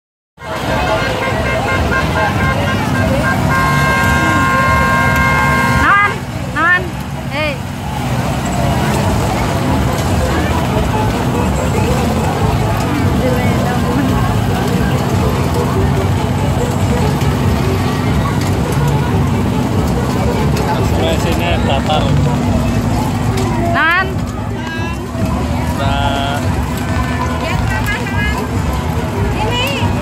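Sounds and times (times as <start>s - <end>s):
crowd chatter: 0.4s - 30.0s.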